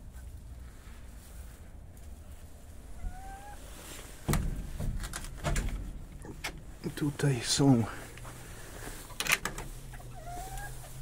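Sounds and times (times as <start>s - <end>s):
chicken soft call: 3.0s - 3.8s
loud rustling knocks: 4.0s - 6.8s.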